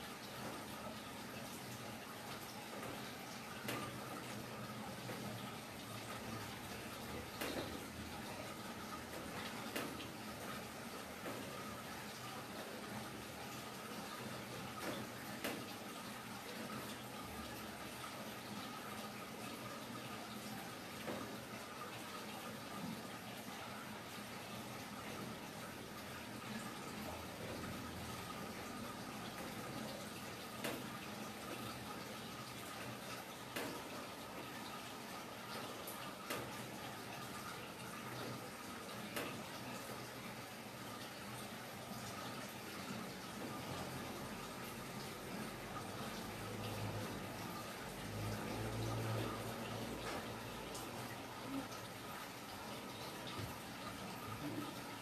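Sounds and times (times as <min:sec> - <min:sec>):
running water rushing: 0:00.0 - 0:55.0.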